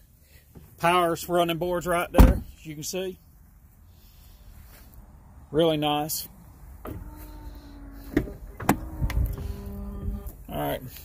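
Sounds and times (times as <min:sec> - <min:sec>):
car door latch clicking: 0:08.1 - 0:09.4.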